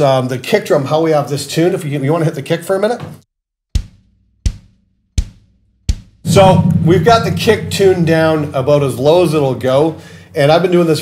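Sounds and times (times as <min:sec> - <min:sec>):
kick drum hits: 0:03.7 - 0:08.0.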